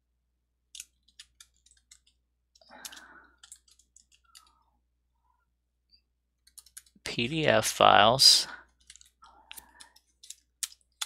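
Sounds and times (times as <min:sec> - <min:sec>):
computer keyboard keys clicking: 0:00.7 - 0:04.6, 0:06.4 - 0:07.0, 0:08.8 - 0:11.0.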